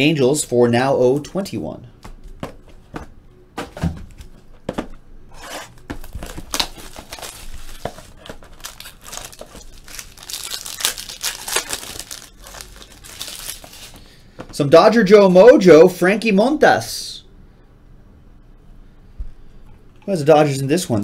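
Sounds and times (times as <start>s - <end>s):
plastic wrapping crinkling: 5.4s - 14.2s.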